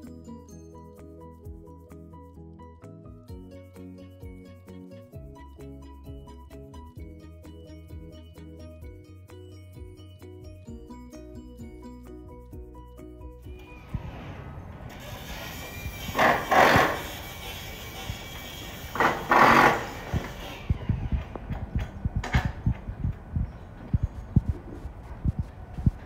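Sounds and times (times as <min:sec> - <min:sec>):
background music: 0:00.0 - 0:20.8
loud bursts of noise: 0:14.9 - 0:21.3.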